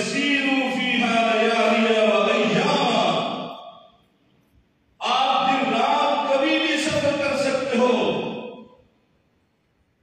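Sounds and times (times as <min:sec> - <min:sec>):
man chanting into a microphone: 0:05.0 - 0:08.5.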